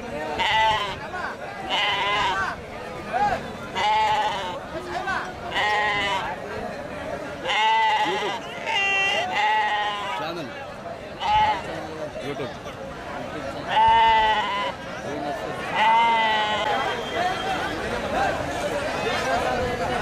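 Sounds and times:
market crowd noise: 0.0 - 20.0
sheep and goats bleating: 0.3 - 1.0, 1.6 - 2.6, 3.7 - 4.6, 5.5 - 6.4, 7.4 - 10.2, 11.2 - 11.7, 13.6 - 14.8, 15.6 - 16.8.

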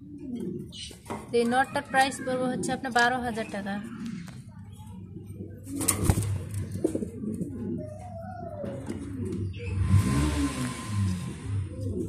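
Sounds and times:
pigeon cooing: 0.0 - 1.0, 3.7 - 12.0.

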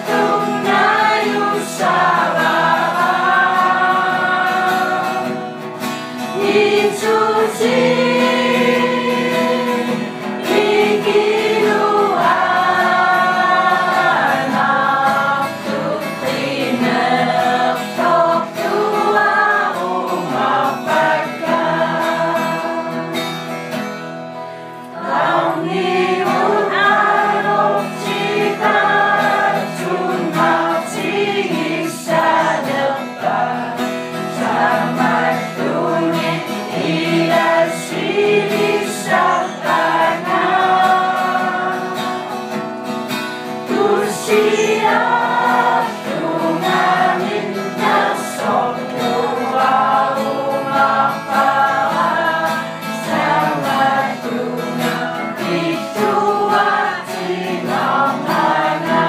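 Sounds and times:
choir singing held notes: 0.0 - 23.5, 24.5 - 59.0.

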